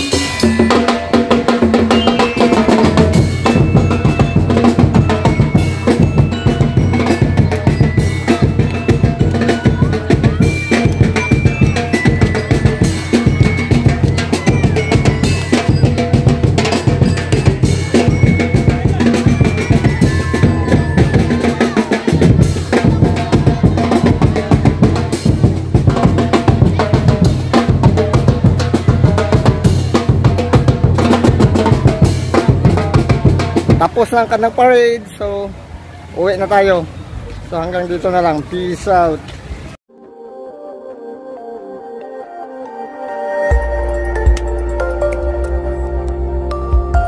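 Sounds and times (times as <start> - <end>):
crowd voices: 0.0 - 34.5
drums playing a driving beat: 0.0 - 35.0.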